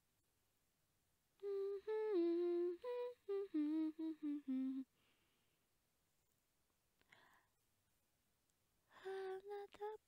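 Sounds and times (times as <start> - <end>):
woman humming: 1.4 - 4.9.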